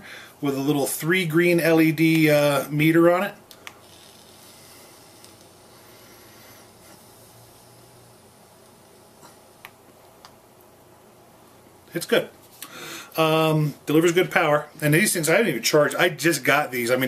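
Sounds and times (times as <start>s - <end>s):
hiss of air drawn through e-cigarette: 3.5s - 9.7s.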